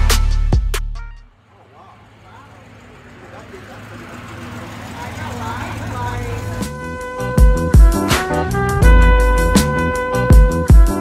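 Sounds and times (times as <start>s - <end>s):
music: 0.0s - 1.3s, 6.0s - 11.0s
car running: 0.0s - 8.9s
traffic noise: 1.2s - 8.9s.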